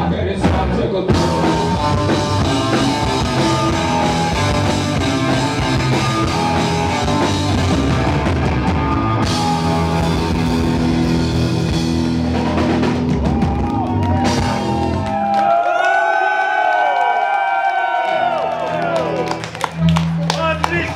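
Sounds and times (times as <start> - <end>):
live rock band playing: 0.0 - 15.4
electric guitar notes sliding: 1.2 - 12.7.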